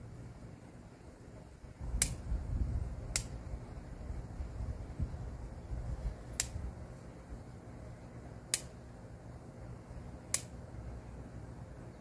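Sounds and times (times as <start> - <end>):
steady low rumble: 0.0 - 12.0
pruning shears snipping stems: 1.9 - 2.2, 3.1 - 3.4, 6.3 - 6.6, 8.5 - 8.8.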